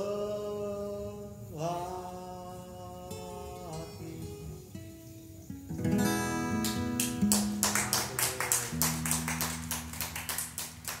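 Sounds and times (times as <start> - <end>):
acoustic guitar strumming: 1.8 - 11.0.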